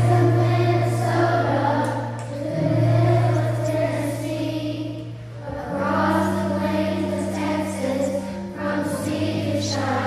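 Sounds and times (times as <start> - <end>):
children's choir singing: 0.0 - 10.0
musical accompaniment: 0.0 - 10.0.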